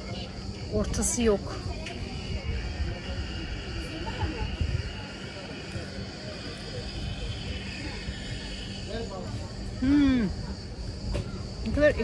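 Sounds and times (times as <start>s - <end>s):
faint background voices: 0.0s - 12.0s
wind rumble on microphone: 0.6s - 9.8s
high-pitched drone: 0.7s - 11.0s.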